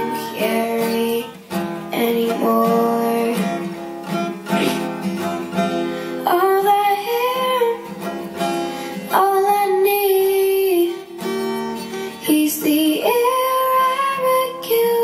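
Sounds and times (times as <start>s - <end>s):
acoustic guitar strumming: 0.0s - 15.0s
girl singing slow song: 0.0s - 15.0s.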